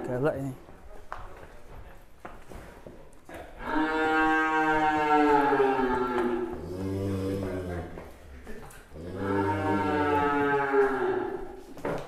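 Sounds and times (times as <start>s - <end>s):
bull mooing: 3.6s - 8.0s, 8.9s - 11.6s.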